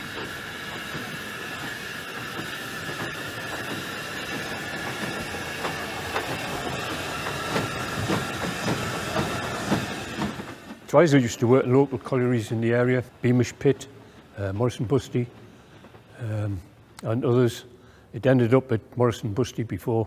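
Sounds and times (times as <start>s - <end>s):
steady hiss of steam: 0.0s - 18.2s.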